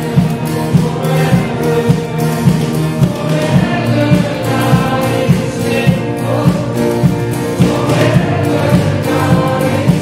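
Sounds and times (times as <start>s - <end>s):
worship song with band: 0.0s - 10.0s.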